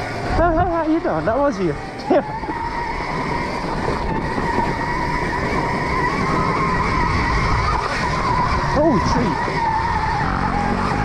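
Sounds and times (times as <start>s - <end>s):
electric motor whine: 0.0s - 11.0s
tyres rumbling on dirt trail: 0.0s - 11.0s.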